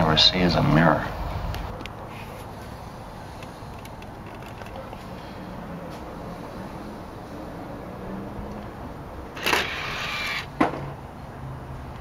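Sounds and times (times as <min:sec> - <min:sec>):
disc tray mechanism running: 0:09.4 - 0:10.5.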